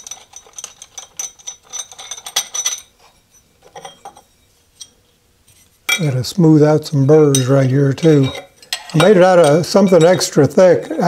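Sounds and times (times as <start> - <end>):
metallic clinks and rattles of tools: 0.0 - 5.0, 7.3 - 10.4.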